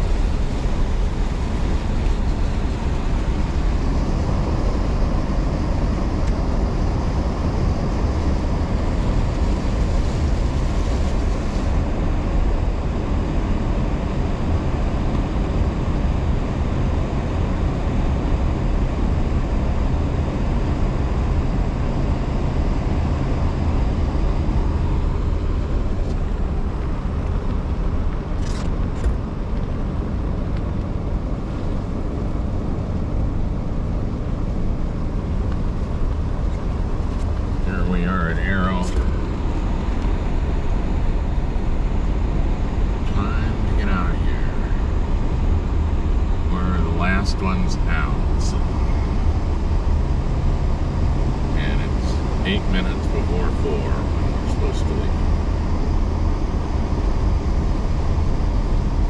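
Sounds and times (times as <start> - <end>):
car engine and tyres rumble: 0.0 - 59.0.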